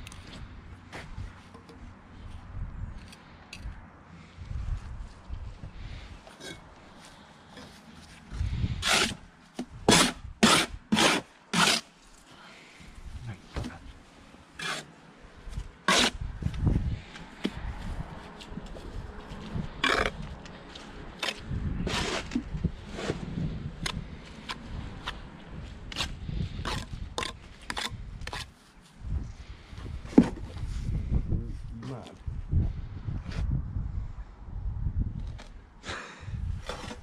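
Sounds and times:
trowel scraping mortar and brick: 7.6 - 9.2, 9.9 - 12.2, 14.6 - 15.0, 15.8 - 16.2, 19.3 - 20.3, 21.2 - 25.2, 25.8 - 28.6, 36.6 - 37.0.

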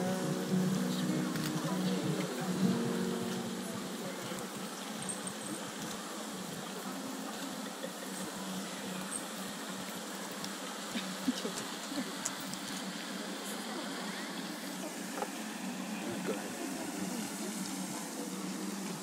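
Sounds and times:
processional music: 0.0 - 4.4
open-air ambience hiss: 0.0 - 19.0.

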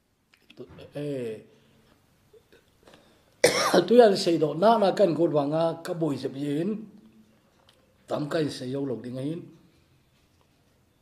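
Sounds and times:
man speaking: 0.6 - 1.5, 3.7 - 7.0, 8.1 - 9.6.

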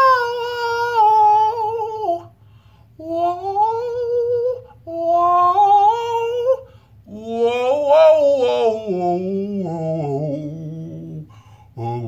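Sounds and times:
man singing vocal warm-up notes: 0.0 - 2.4, 3.0 - 12.0.

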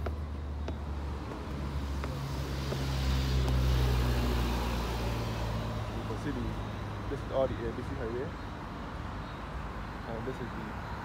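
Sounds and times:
road traffic passing: 0.0 - 11.0.

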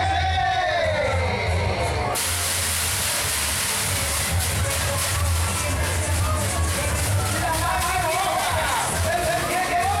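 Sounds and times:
fairground ride music: 0.0 - 10.0
loud compressed air hiss: 2.2 - 5.2.

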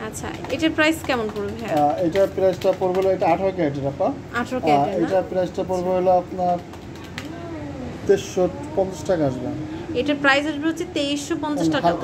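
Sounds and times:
people talking: 0.0 - 6.6, 7.2 - 12.0.

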